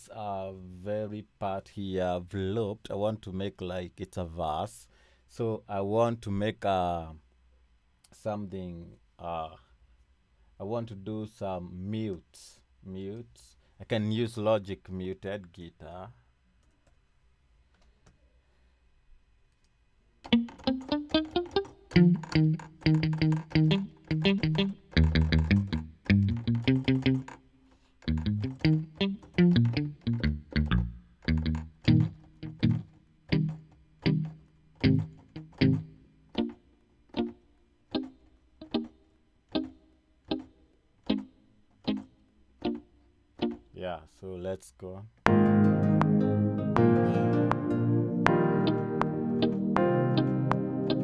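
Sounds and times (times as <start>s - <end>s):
palm-muted electric guitar notes: 20.3s - 27.3s, 28.0s - 36.6s, 45.3s - 51.0s.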